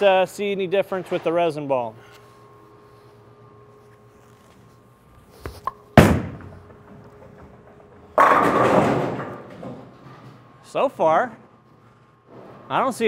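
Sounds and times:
bowling ball rolling: 5.6s - 10.6s
bowling ball thud on lane: 5.9s - 9.9s
bowling pins clattering: 5.9s - 10.6s.

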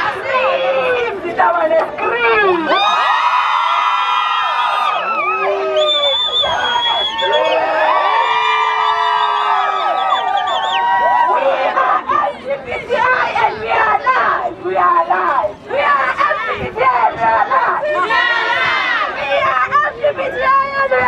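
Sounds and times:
crowd singing and shouting: 0.0s - 3.2s, 4.9s - 21.0s.

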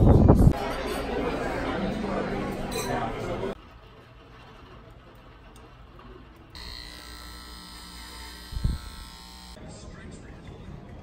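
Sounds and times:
electric buzz with held tones: 6.5s - 9.6s.

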